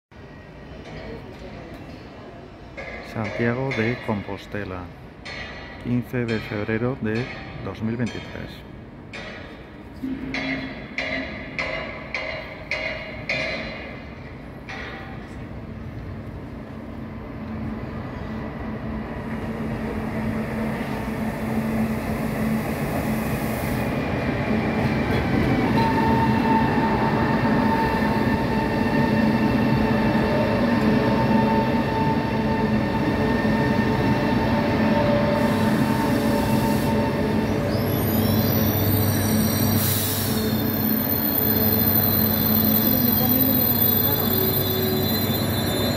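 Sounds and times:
passenger train pulling in: 0:00.1 - 0:06.2, 0:08.6 - 0:45.9.

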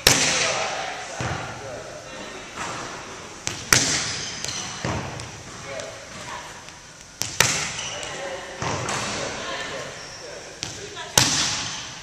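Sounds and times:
hand slapping volleyball: 0:00.0 - 0:00.6, 0:03.4 - 0:09.3, 0:10.6 - 0:11.9.

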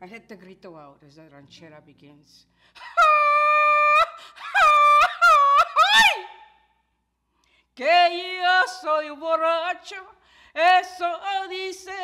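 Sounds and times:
woman yelling and whooping: 0:03.0 - 0:06.4.

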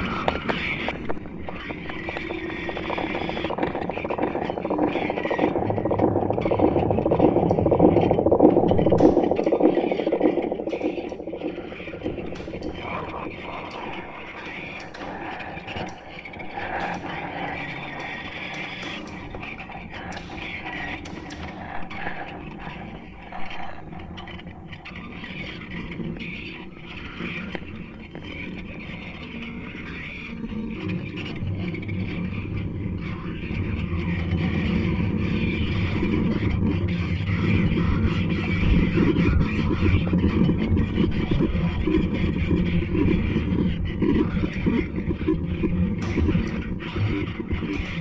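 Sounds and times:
experimental electronic noise music: 0:00.0 - 0:48.0
heavy low rumble: 0:01.0 - 0:20.8.

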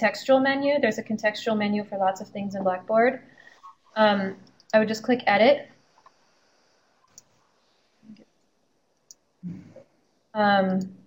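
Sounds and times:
computer mouse clicks: 0:07.1 - 0:07.3
soft vocal murmurs: 0:09.4 - 0:09.8.

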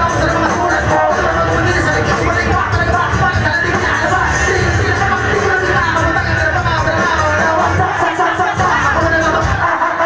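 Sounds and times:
loud hip-hop beat: 0:00.0 - 0:10.0
rapping through a pa system: 0:00.0 - 0:10.0.

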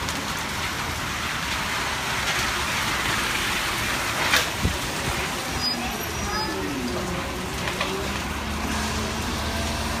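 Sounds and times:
rain hissing: 0:00.0 - 0:10.0
bus engine idling: 0:00.6 - 0:10.0.

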